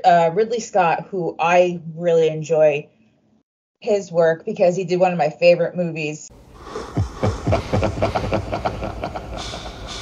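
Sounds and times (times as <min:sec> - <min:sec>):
low rumble: 0:06.6 - 0:10.0.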